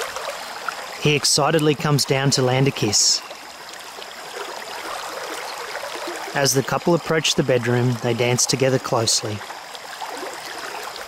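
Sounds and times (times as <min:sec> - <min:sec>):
stream water flowing: 0:00.0 - 0:11.0.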